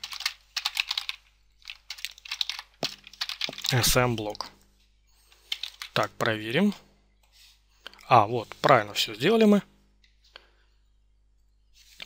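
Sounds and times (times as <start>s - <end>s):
computer keyboard typing: 0.0s - 3.8s, 5.4s - 6.0s.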